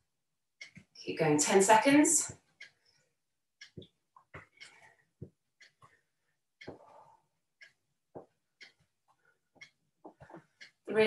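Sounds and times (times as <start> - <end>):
soft footsteps: 8.1 - 10.6.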